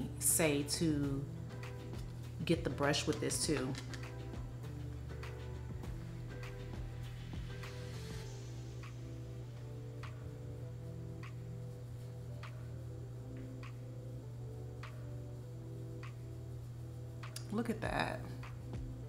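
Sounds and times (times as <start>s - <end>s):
soft background music: 0.0s - 19.0s.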